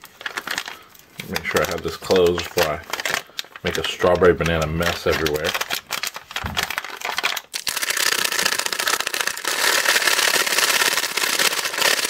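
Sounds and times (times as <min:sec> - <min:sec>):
plastic pouch crinkling and rattling: 0:00.0 - 0:12.0.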